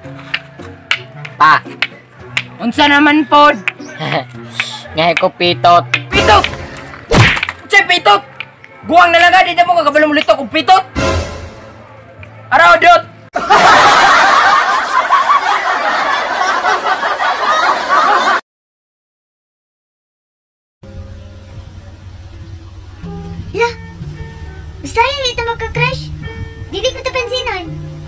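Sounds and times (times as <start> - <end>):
background music with low tone: 0.0 - 13.3, 20.8 - 28.0
loud high-pitched laughter: 13.4 - 18.4.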